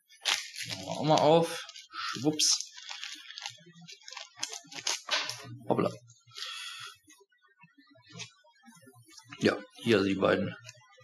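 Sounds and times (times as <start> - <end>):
plastic bag crinkling: 0.1 - 5.4.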